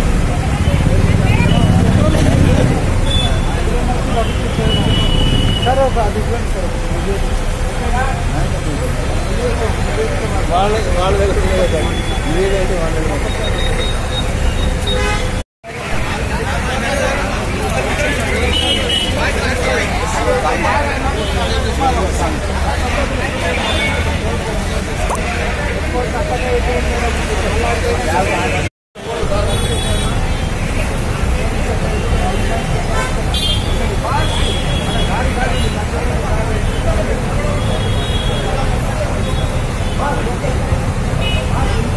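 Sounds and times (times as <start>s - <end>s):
low rumble of vehicles: 0.0s - 41.9s
people talking: 0.0s - 41.9s.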